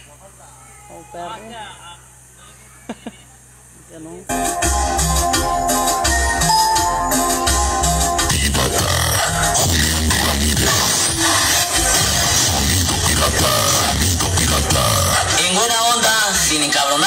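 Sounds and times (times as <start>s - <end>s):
held organ-like notes: 4.3s - 10.3s
loud bass-heavy electronic music: 4.3s - 17.0s.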